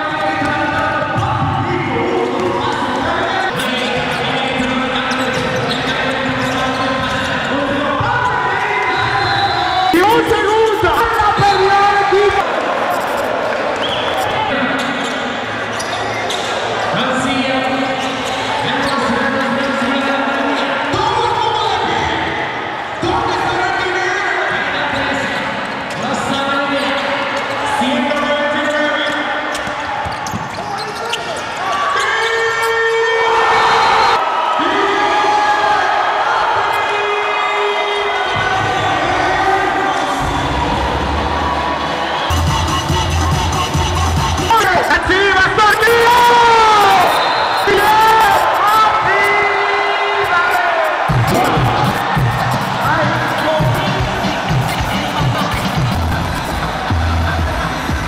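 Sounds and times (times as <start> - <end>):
voices in hall: 0.0 - 58.0.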